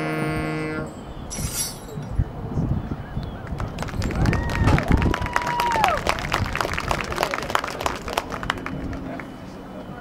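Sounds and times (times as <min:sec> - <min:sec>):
voices: 0:01.8 - 0:10.0
clapping from stands: 0:03.4 - 0:09.3.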